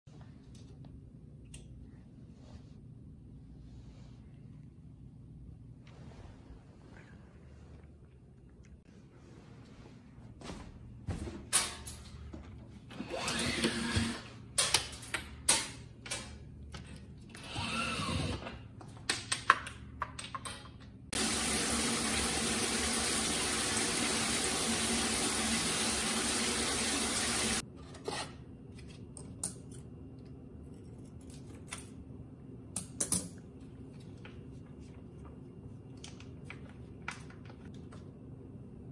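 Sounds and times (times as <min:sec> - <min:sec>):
running water in bathroom: 0:21.2 - 0:27.6.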